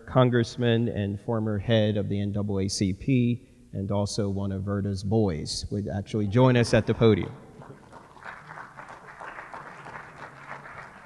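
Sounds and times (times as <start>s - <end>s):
audience applauding: 7.4s - 11.0s.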